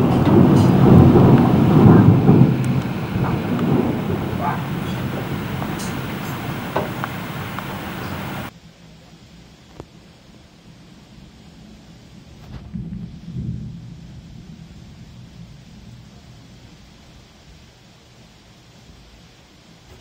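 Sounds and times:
loud rushing noise: 0.0 - 8.5
thunder rumbling: 0.0 - 8.5, 10.8 - 17.7.

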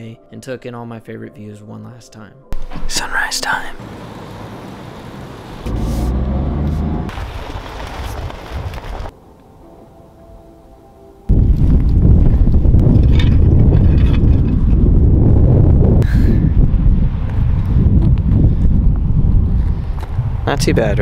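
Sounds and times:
wind buffeting microphone: 11.3 - 21.0.

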